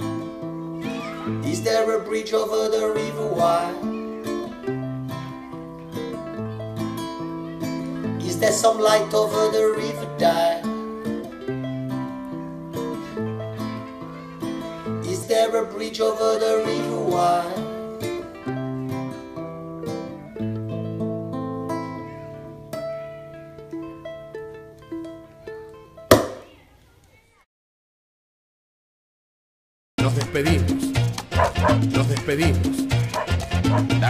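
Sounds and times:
acoustic guitar chords: 0.0 - 26.0, 30.0 - 34.0.

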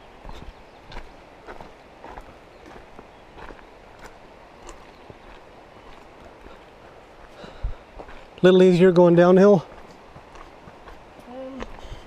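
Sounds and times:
footsteps on dirt trail: 0.0 - 12.0.

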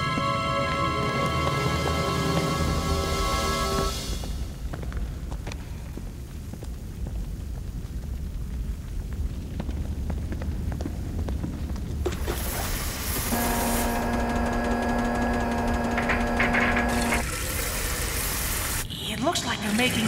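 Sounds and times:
steam hissing: 12.0 - 18.9.

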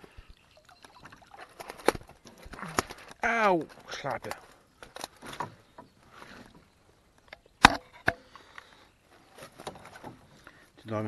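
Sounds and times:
faint rustling of net: 8.4 - 10.8.

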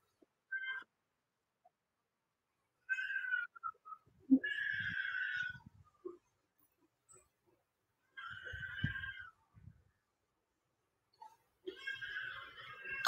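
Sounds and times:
high-pitched animal calls: 0.5 - 0.9, 2.9 - 5.7.

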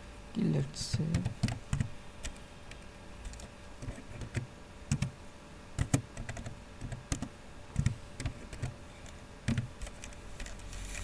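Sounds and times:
keyboard typing: 0.9 - 5.2, 5.8 - 11.0.

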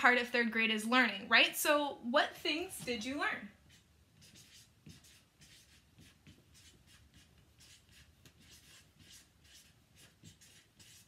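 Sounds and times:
marker writing on paper: 3.6 - 11.0.

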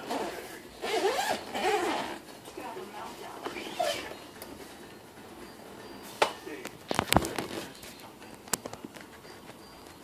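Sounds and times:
rustling noise: 0.0 - 10.0.

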